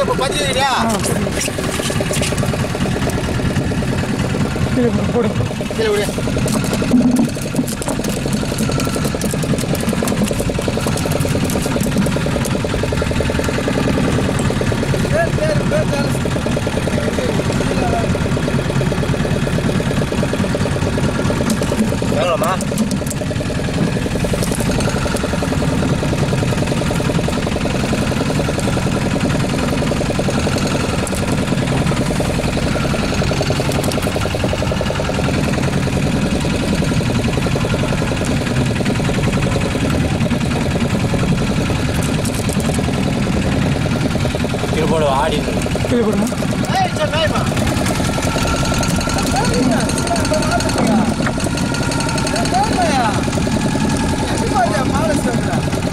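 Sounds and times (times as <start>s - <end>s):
boat engine droning: 0.0s - 55.9s
voices: 44.7s - 55.8s.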